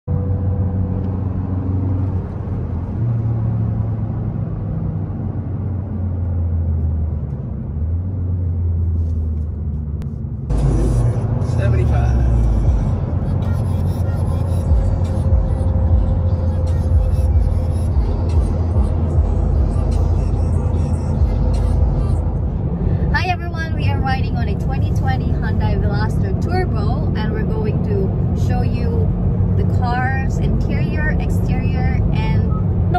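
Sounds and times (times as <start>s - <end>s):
car driving noise inside cabin: 0.1s - 32.9s
music with stepping bass line: 14.6s - 20.6s.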